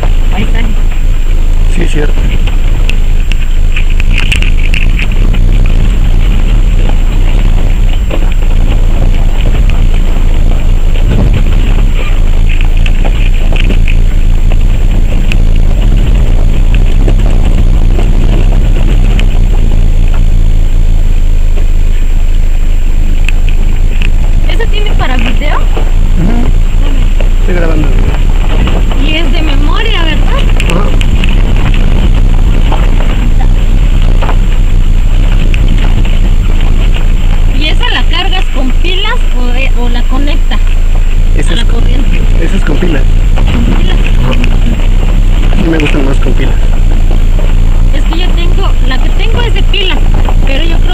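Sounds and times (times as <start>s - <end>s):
indistinct voices talking: 0.0s - 50.9s
vehicle rumbling on gravel: 0.0s - 50.9s.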